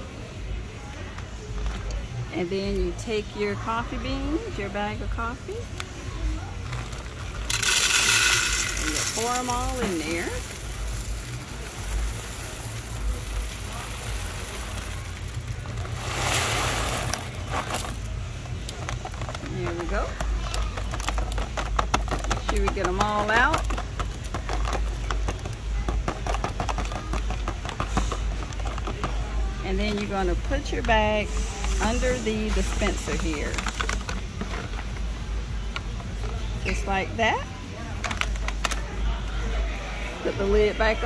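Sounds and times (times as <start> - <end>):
coffee beans rattling into plastic hopper: 6.6 - 29.2, 29.8 - 34.7.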